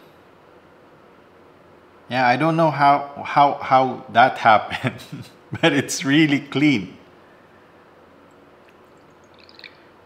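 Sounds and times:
coffee trickling into a glass: 8.6s - 10.0s.

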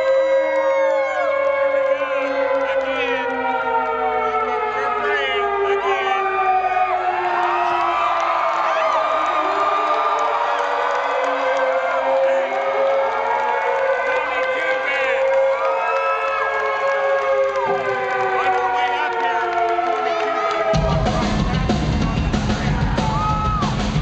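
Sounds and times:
crowd cheering and whooping: 0.0s - 24.0s.

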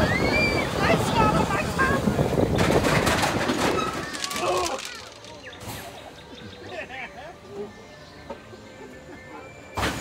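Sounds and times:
roller coaster rumbling on track: 0.0s - 5.6s.

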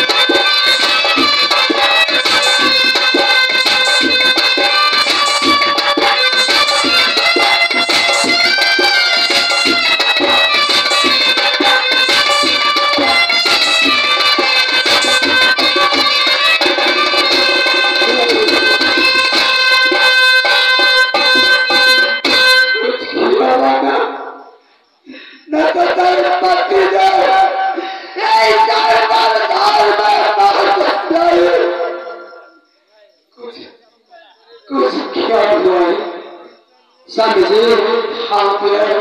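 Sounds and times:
hand-drum beat: 0.0s - 22.4s
shehnai wailing melody: 0.0s - 24.6s, 25.5s - 32.7s
keyboard: 0.0s - 39.0s.

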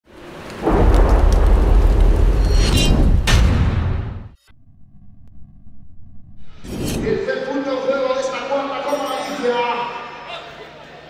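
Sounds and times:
rain hissing: 0.0s - 3.2s
deep rumble of thunder: 0.6s - 3.9s.

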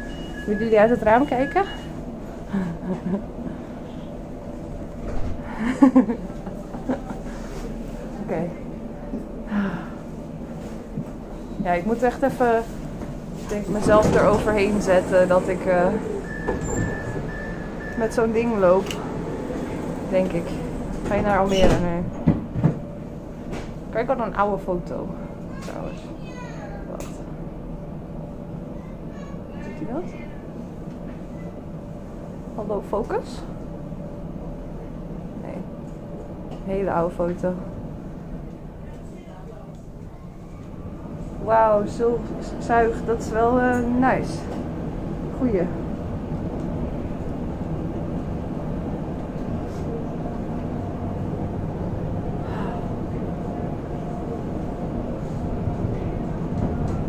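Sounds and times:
train carriage rumble: 0.0s - 57.0s.

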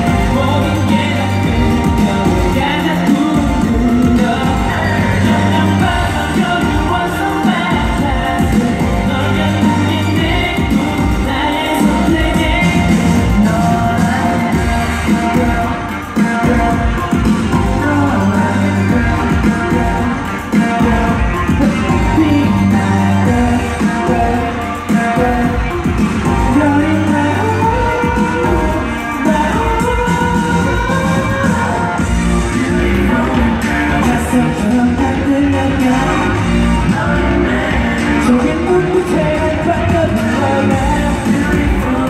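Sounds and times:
amplified backing music with beat: 0.0s - 42.0s
male group singing pop song: 0.0s - 42.0s.

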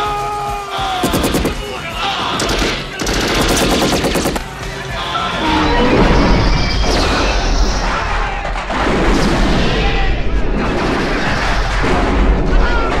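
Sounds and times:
automatic gunfire: 1.0s - 1.8s, 2.4s - 4.4s.

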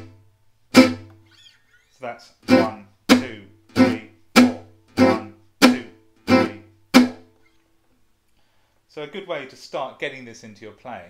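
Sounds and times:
acoustic guitar chords strummed: 0.0s - 1.2s, 2.4s - 7.3s.

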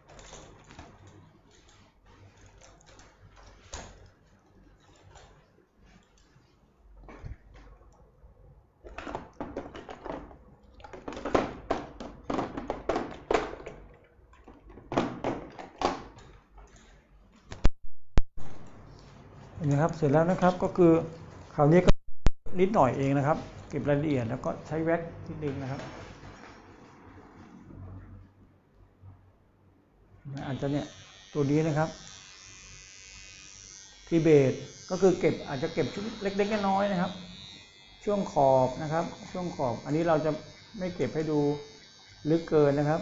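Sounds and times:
electric hair clipper running: 30.4s - 43.0s.

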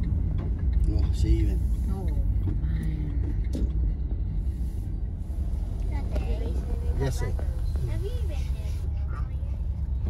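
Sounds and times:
car engine rumble: 0.0s - 10.0s
road noise: 0.0s - 10.0s.

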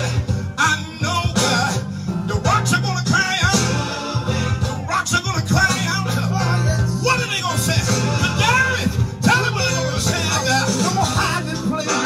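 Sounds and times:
gospel band over loudspeakers: 0.0s - 12.0s
person singing: 0.0s - 12.0s.

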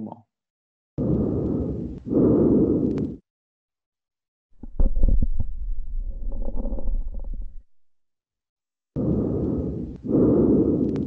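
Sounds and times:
breath sounds through stethoscope: 1.0s - 3.3s, 8.9s - 11.0s
sharp crackling clicks: 9.0s - 11.0s.

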